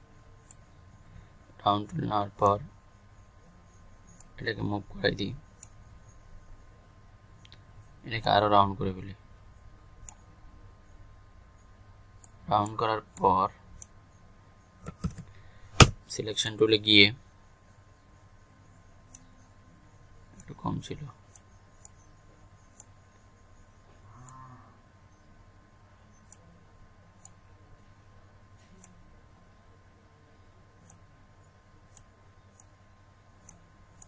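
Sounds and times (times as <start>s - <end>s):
faint steady hum: 0.0s - 34.0s.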